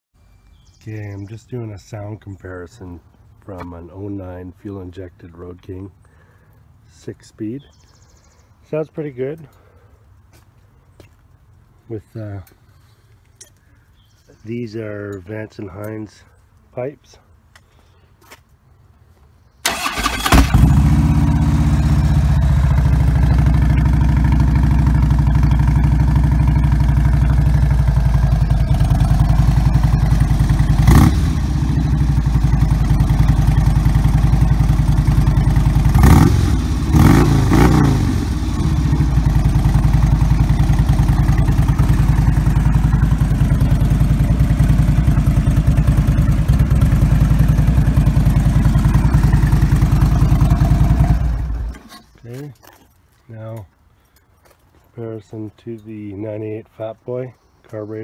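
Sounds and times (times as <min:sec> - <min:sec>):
motorcycle engine idling and revving: 0:19.7 - 0:52.4.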